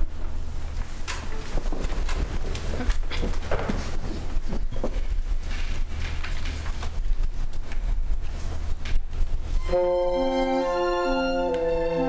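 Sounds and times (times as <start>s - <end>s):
low rumble of room noise: 0.0s - 12.0s
string ensemble chord: 9.7s - 12.0s.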